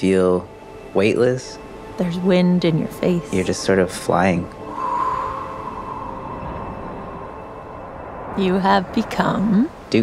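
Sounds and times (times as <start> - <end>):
steady rushing sound effect: 4.6 - 8.4.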